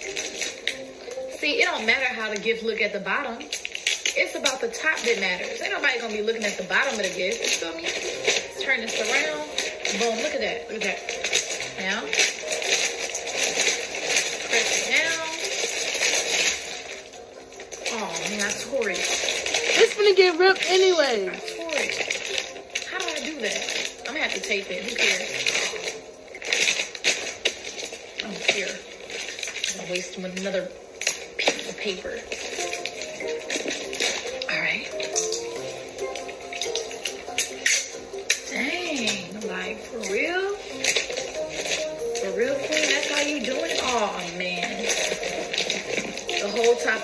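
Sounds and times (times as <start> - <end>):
soft background music: 0.0 - 47.0
wrapping paper rustling: 0.0 - 47.0
person speaking: 17.9 - 22.1.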